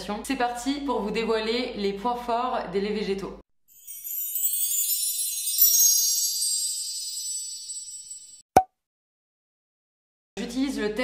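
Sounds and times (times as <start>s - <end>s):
glittering chime shimmer: 3.7s - 8.4s.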